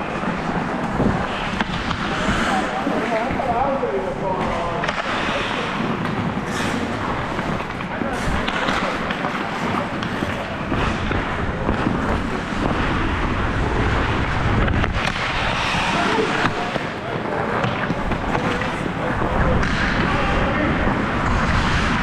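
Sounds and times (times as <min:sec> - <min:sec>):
wind on microphone: 0:00.0 - 0:04.8, 0:10.4 - 0:16.7, 0:17.9 - 0:22.0
skate blades scraping on ice: 0:00.0 - 0:22.0.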